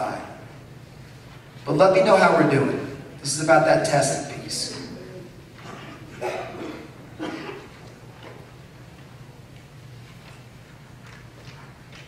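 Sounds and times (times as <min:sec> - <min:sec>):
steady low hum: 0:00.0 - 0:12.0
faint footsteps: 0:07.6 - 0:12.0.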